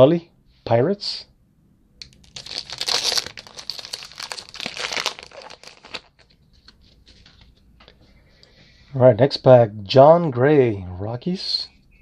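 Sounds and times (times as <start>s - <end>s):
plastic wrapper tearing and crinkling: 2.0s - 7.4s.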